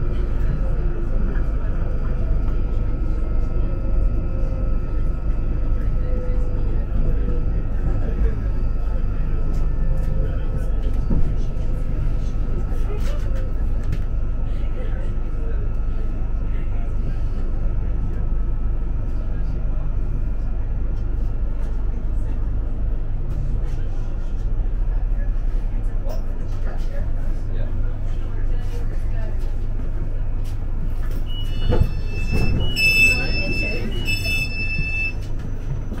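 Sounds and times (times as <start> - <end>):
train running rumble: 0.0 - 36.0
train wheels rumbling on track: 29.1 - 36.0.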